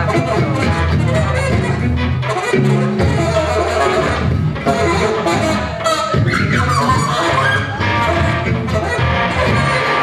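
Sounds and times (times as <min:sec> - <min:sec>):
alto saxophone: 0:00.0 - 0:10.0
electric bass: 0:00.0 - 0:10.0
electric guitar: 0:00.0 - 0:10.0.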